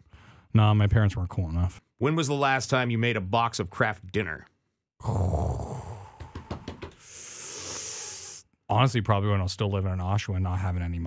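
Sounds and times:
man humming hmmm: 5.0 - 6.4.

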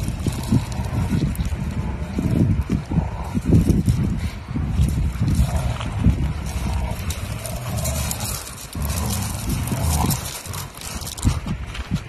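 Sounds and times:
dogs snuffling and breathing: 0.0 - 12.0
paws scuffing gravel: 0.0 - 12.0.

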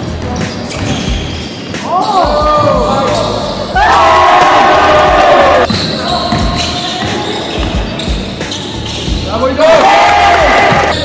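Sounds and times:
sneakers squeaking: 0.0 - 4.0, 5.6 - 9.8, 10.4 - 11.0
basketball bouncing on wood floor: 5.7 - 8.2.

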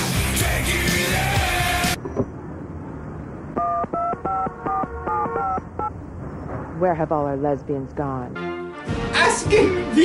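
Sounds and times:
touch-tone keypad beeps: 3.6 - 5.9.

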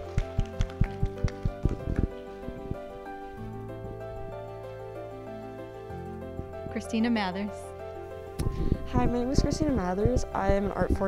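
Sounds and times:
people clapping: 0.0 - 2.2
soft background music: 0.0 - 11.0.

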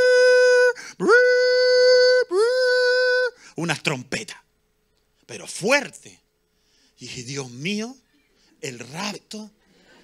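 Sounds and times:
man imitating trumpet blast: 0.0 - 3.4.

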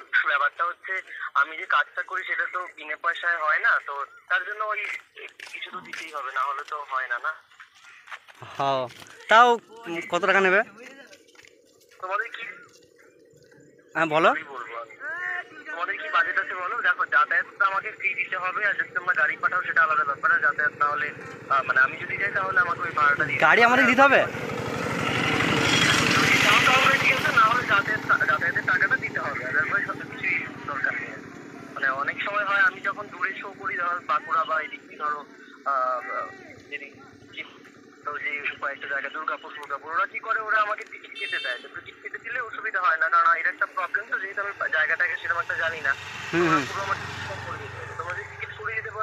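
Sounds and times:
person's voice: 0.0 - 7.4, 14.0 - 24.3, 31.8 - 49.0
vehicle approaching on road: 0.0 - 49.0
motorcycle passing by: 19.8 - 38.1, 44.4 - 49.0.

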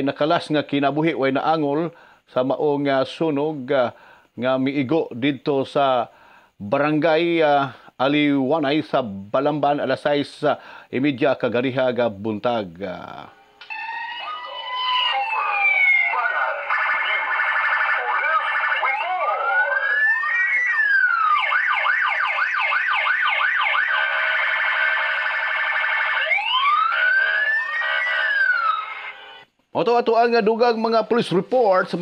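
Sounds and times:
siren wailing and yelping: 13.3 - 29.5.

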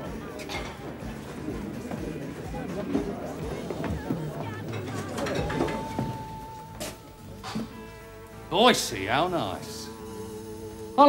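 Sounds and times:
murmur of voices: 0.0 - 7.5
music playing: 0.0 - 11.0.

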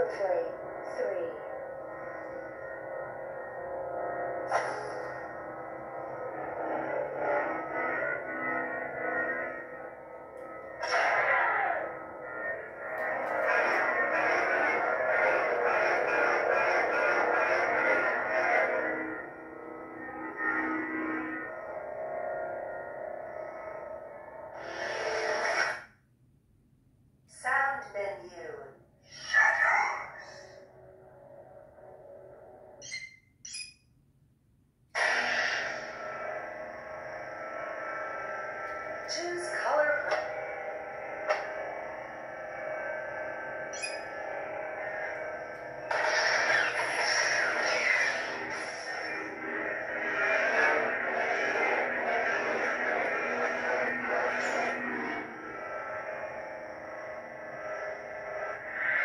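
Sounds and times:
lightsaber hum: 0.0 - 25.9, 35.0 - 59.0.

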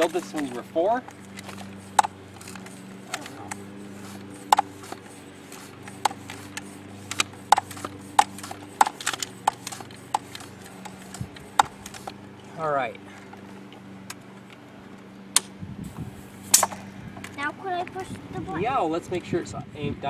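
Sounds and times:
pump clicks: 0.0 - 12.2
hand pump strokes: 0.0 - 13.8.

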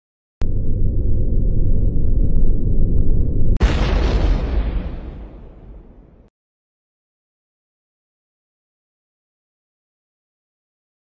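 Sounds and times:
deep rumble: 0.4 - 6.3
explosive blast: 3.5 - 6.3.

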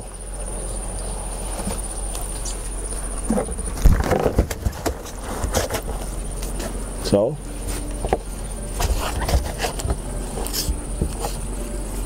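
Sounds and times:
cricket chirring: 0.0 - 12.0.

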